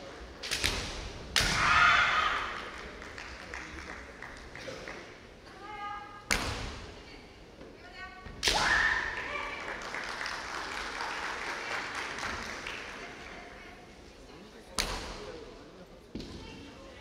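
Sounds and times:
sharp cracks of bamboo swords: 0.4s - 1.8s, 6.3s - 6.9s, 8.4s - 8.9s, 14.8s - 15.2s.

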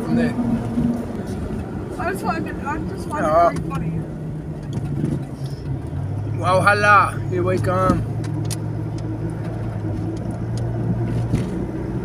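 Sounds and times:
car engine hum: 0.0s - 12.0s
tyres on the road: 0.0s - 12.0s.

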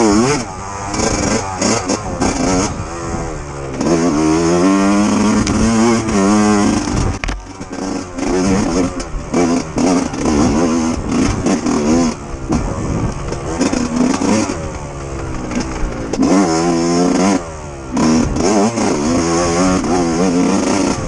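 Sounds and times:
dirt bike engine revving: 0.0s - 21.0s.

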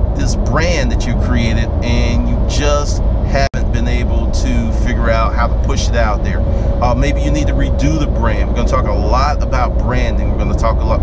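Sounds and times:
car road and engine rumble: 0.0s - 11.0s
people talking: 0.2s - 11.0s.

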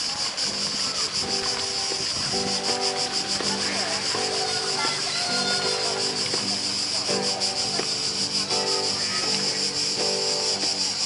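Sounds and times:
insects buzzing: 0.0s - 11.0s
music of held chords: 0.3s - 11.0s.

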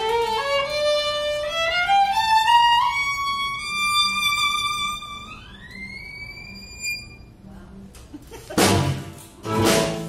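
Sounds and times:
violin sliding to a high note: 2.9s - 7.4s.

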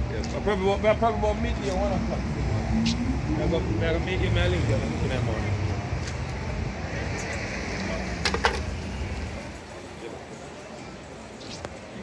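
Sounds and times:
low rumble of traffic: 0.0s - 12.0s.

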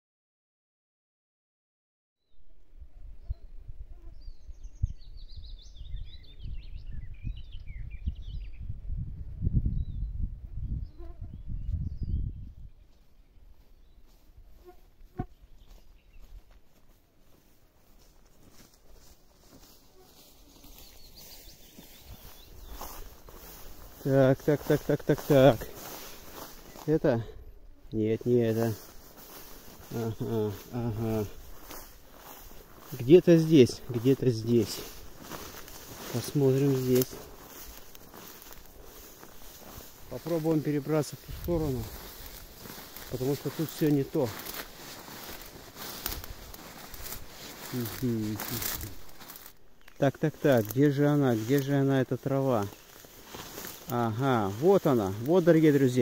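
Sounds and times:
footsteps through tall grass: 11.6s - 56.0s
faint bird chirps: 20.0s - 24.0s
light crackles: 33.7s - 51.8s, 52.5s - 56.0s.

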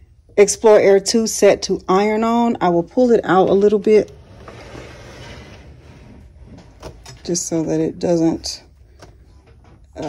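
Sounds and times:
machine scraping across wooden desk: 3.8s - 7.3s.

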